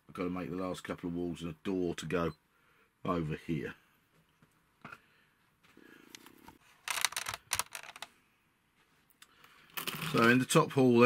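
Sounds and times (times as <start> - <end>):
wooden pieces clicking and clattering: 6.8 - 8.1.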